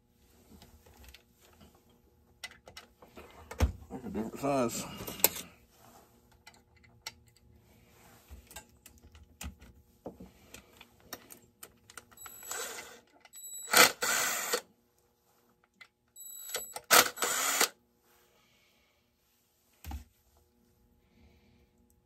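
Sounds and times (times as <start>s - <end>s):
cordless drill running: 12.2s - 14.6s, 16.4s - 17.7s.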